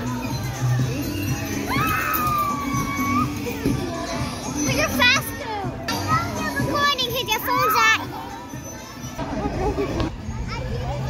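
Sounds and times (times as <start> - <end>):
children squealing and chattering: 0.0 - 11.0.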